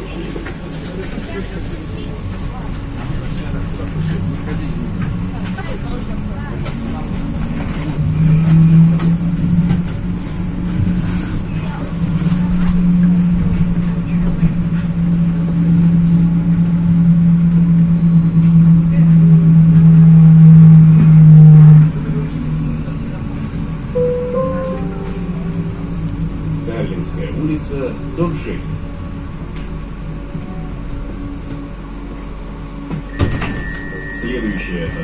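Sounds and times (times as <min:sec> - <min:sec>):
tram running hum: 0:00.0 - 0:35.0
wheels rumbling on rails: 0:00.0 - 0:35.0.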